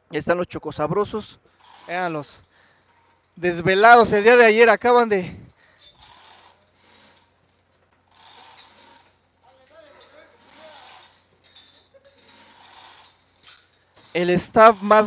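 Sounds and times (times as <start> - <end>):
rope rubbing through pulley: 1.5 - 5.0, 5.8 - 15.0.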